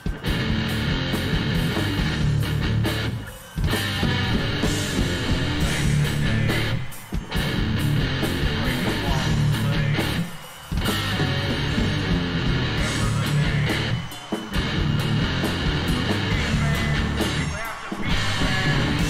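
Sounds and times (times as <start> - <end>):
death metal song: 0.0 - 19.0.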